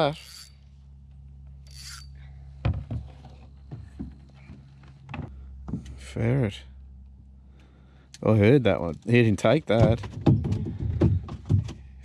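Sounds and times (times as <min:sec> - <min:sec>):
steady low hum: 0:00.0 - 0:12.0
sharp knocks: 0:09.8 - 0:11.8.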